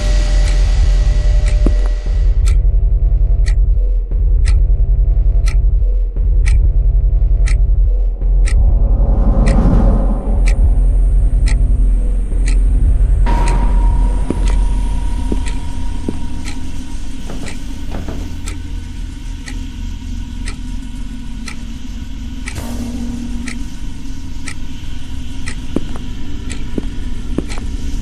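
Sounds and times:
deep steady drone: 0.0 - 28.0
clock-like ticking: 0.3 - 21.8, 22.4 - 28.0
thin high tone: 13.3 - 18.0.

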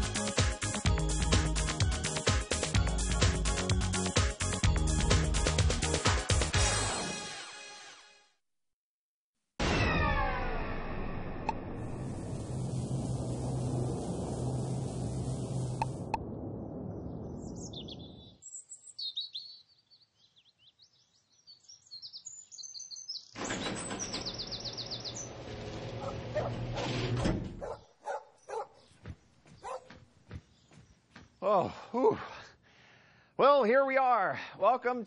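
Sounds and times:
theme tune music: 0.0 - 8.2
humming rattling noise: 11.6 - 16.1
birds chirping: 17.0 - 26.6, 27.6 - 31.5.

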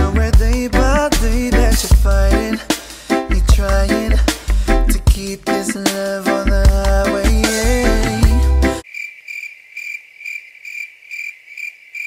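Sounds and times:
cricket chirping: 8.8 - 12.0.

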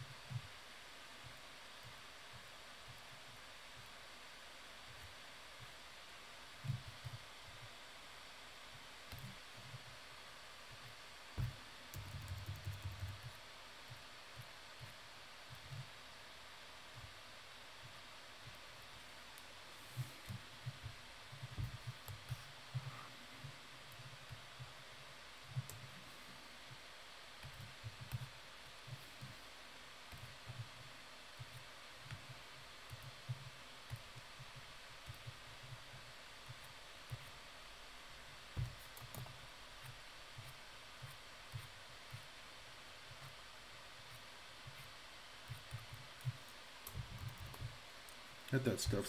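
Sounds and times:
steady low hiss: 0.0 - 49.0
stylus strokes on graphics tablet: 0.0 - 49.0.

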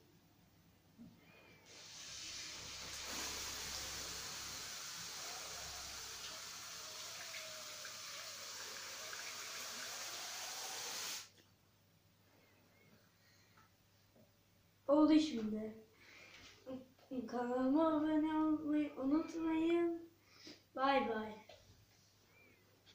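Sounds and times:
water trickling into plastic bowls: 1.7 - 11.3.

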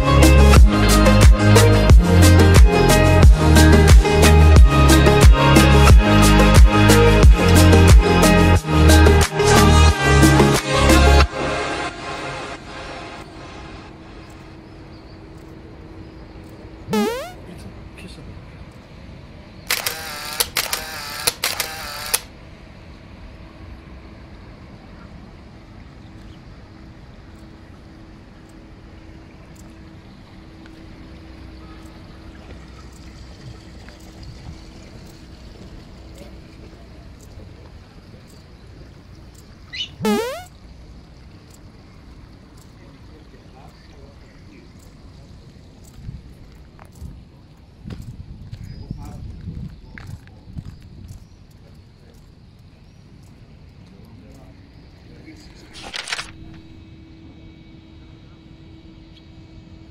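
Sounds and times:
faint steady hum: 11.3 - 59.9
loud wavering call: 16.9 - 17.5, 39.7 - 40.6.

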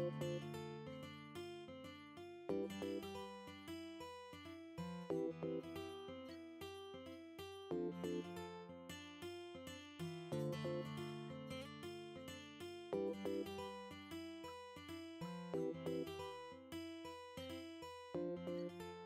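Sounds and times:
acoustic guitar picking: 0.0 - 19.0.

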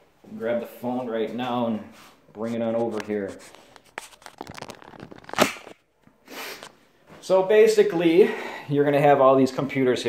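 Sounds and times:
rustling against microphone: 1.9 - 5.8.

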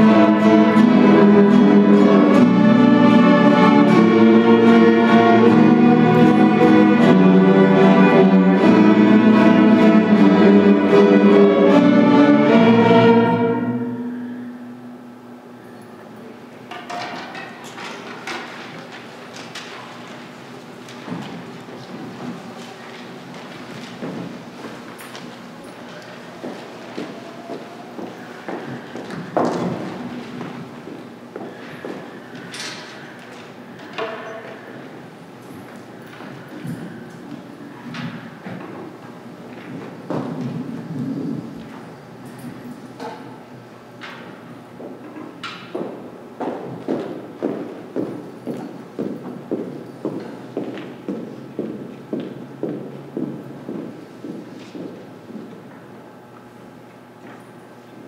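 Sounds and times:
faint held instrument notes: 0.0 - 15.8.

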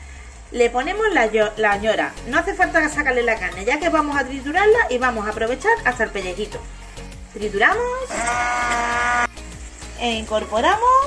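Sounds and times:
immersion blender motor whine: 8.1 - 9.3.

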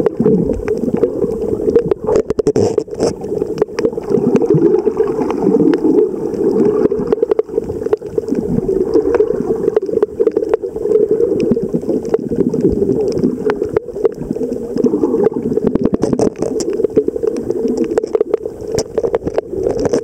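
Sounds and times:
underwater water wash: 0.0 - 20.0
sharp underwater clicks: 0.1 - 8.4, 9.0 - 20.0.

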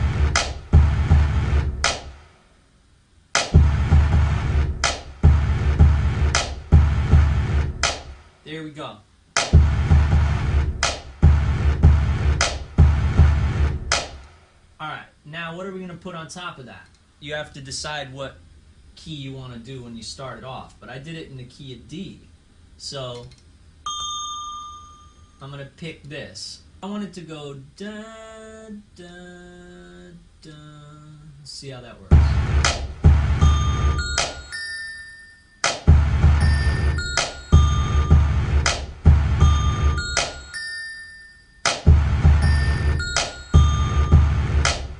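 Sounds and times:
drum machine kick and bass: 0.0 - 2.4, 3.4 - 8.4, 9.4 - 14.6, 32.1 - 34.6, 35.6 - 40.6, 41.7 - 44.9
sharp snare hits: 0.4 - 0.7, 1.8 - 2.4, 3.4 - 4.0, 4.8 - 5.3, 6.4 - 6.8, 7.8 - 8.4, 9.4 - 9.9, 10.8 - 11.3, 12.4 - 12.8, 13.9 - 14.5, 32.2 - 33.3, 35.6 - 36.0, 38.7 - 38.9, 41.7 - 42.2, 44.6 - 44.9
bell-like synth tones: 23.9 - 25.4, 33.4 - 35.7, 36.4 - 38.5, 39.4 - 41.7, 42.4 - 44.6.

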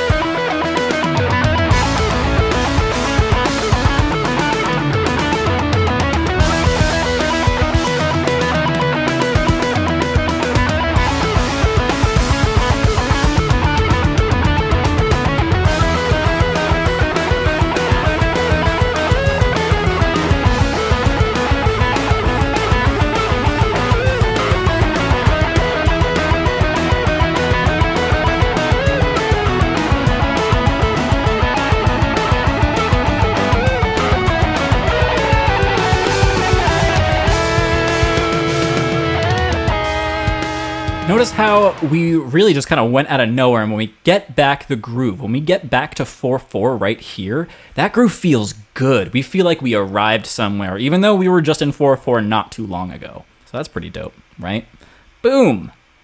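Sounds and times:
electric guitar solo: 0.0 - 42.4
heavy rock song: 0.0 - 42.6.

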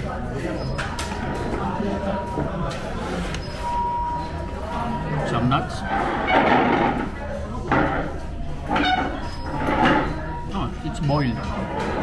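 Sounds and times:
indistinct voices of diners: 0.0 - 12.0.

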